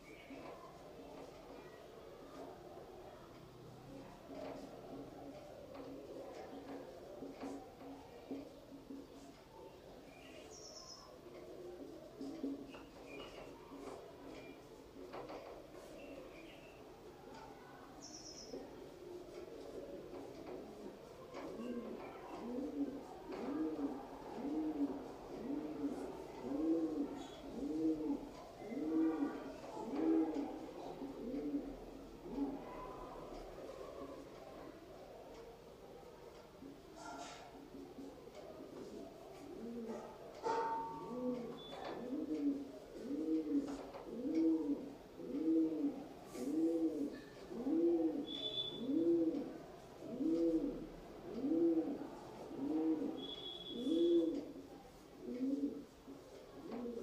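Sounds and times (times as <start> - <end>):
pigeon cooing: 4.0 - 15.2, 15.8 - 35.2, 35.8 - 57.0
bird calling: 48.2 - 49.0, 53.2 - 54.4.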